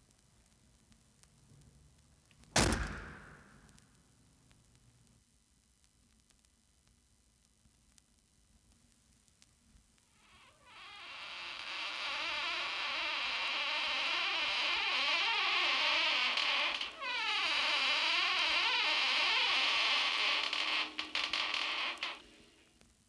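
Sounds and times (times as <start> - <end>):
door clicks: 2.6 - 3.7
squealing door hinge creak: 10.2 - 22.5.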